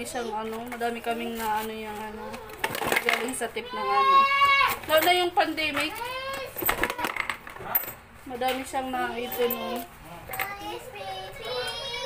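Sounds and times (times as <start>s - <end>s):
toddler sing-song vocal sounds: 9.1s - 12.0s.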